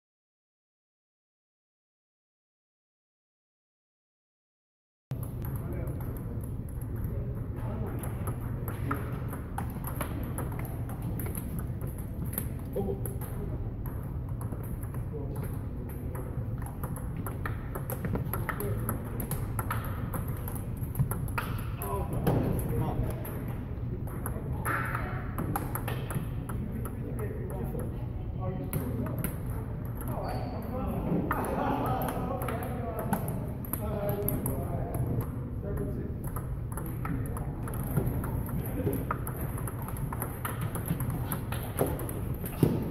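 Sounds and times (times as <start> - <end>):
ping-pong ball clicks: 5.2 - 28.0, 28.7 - 30.5, 31.3 - 42.9
table tennis ball clicking: 32.0 - 42.8.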